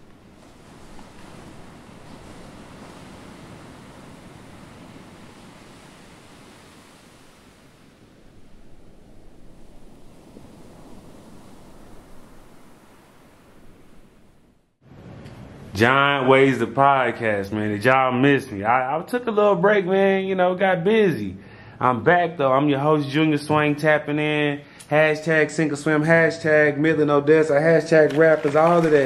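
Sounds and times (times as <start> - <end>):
ocean surf: 0.0 - 15.9.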